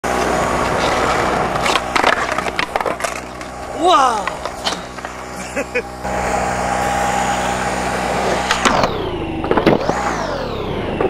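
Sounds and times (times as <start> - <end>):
skateboard wheels rolling on pavement: 0.0 - 11.0
skateboard clattering on ground: 0.6 - 3.5
person shouting: 3.7 - 4.4.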